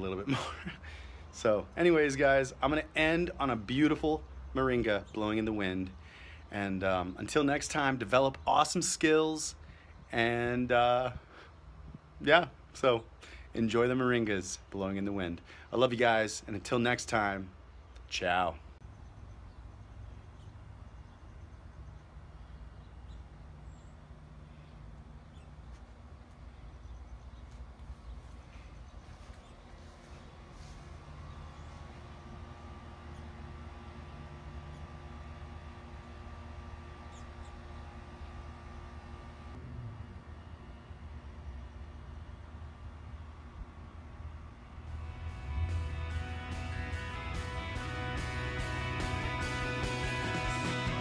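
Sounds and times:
music: 45.0 - 51.0.

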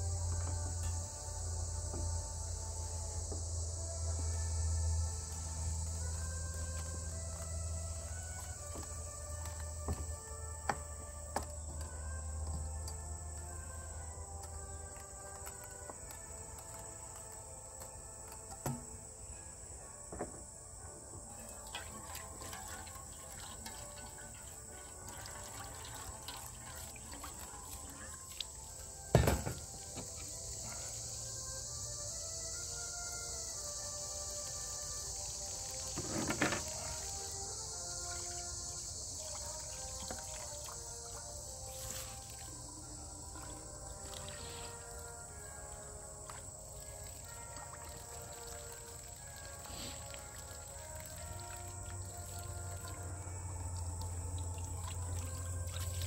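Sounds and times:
high insect drone: 0.0 - 56.0
soft background music: 0.0 - 56.0
water running into a pan: 21.5 - 30.4, 35.8 - 41.3, 46.8 - 53.0.

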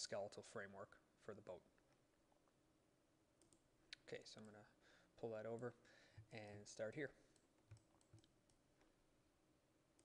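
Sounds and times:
faint mouse clicks: 3.4 - 4.7, 7.3 - 9.0.

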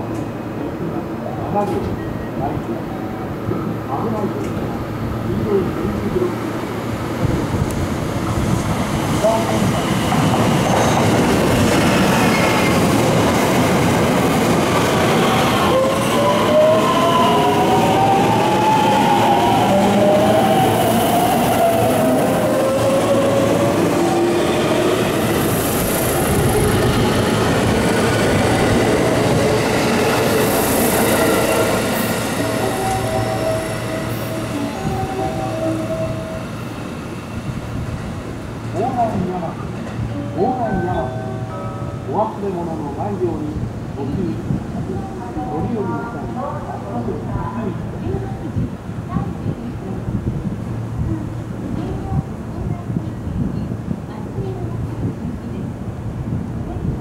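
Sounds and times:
train wheels rumbling on rail: 3.4 - 40.8.

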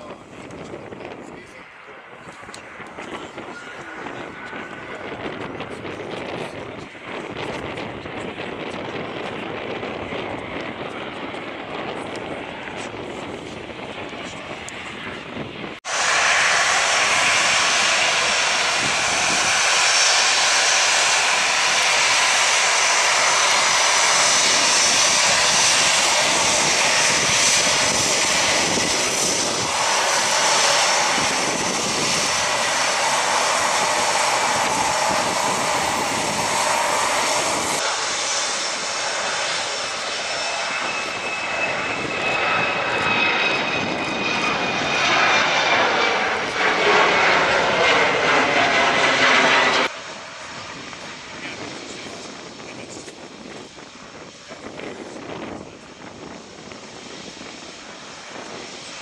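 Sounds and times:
jet engines running: 0.0 - 59.0.

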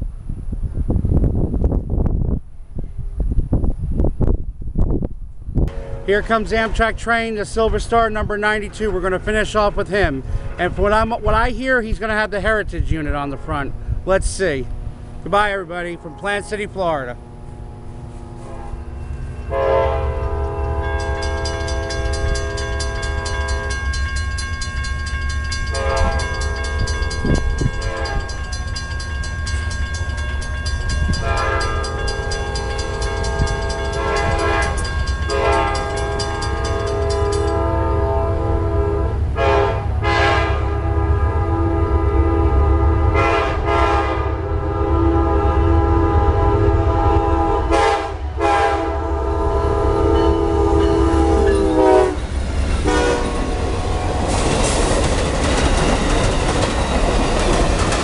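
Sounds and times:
low rumble of train: 0.0 - 58.0
train air horn blasts: 5.7 - 6.9, 10.2 - 10.8, 15.7 - 23.8, 25.7 - 28.4, 31.0 - 54.2
crossing warning bell ringing: 15.6 - 38.7, 49.2 - 58.0.

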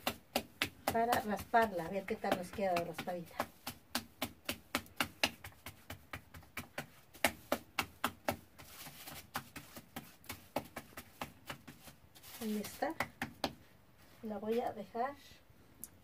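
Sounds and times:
hands slapping dough flat: 0.0 - 13.7.

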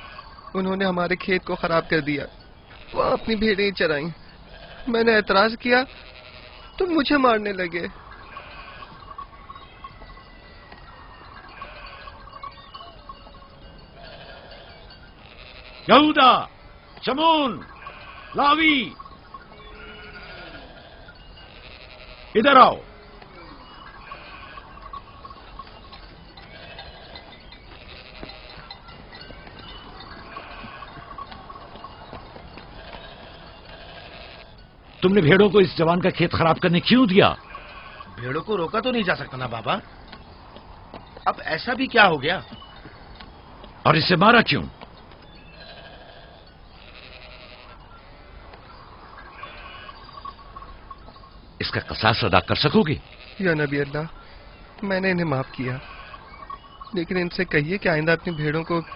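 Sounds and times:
sheep bleating: 0.0 - 0.4, 1.3 - 39.5, 45.5 - 50.4, 51.6 - 58.9.

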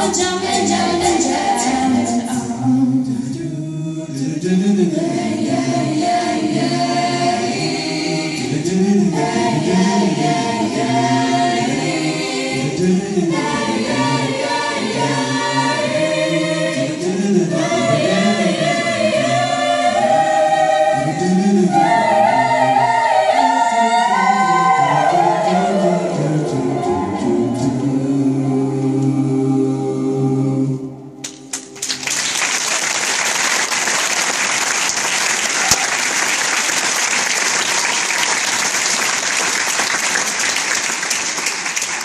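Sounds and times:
choir singing: 0.0 - 31.2.

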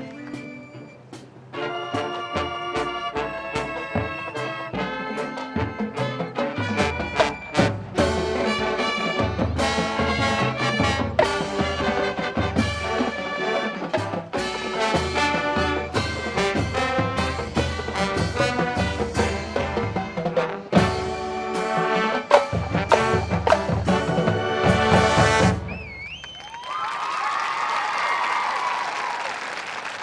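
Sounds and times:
brass chords: 0.0 - 25.8.

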